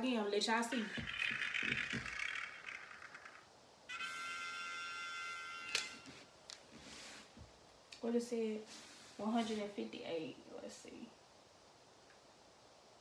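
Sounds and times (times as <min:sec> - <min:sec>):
rattling spin sound effect: 0:00.7 - 0:03.5.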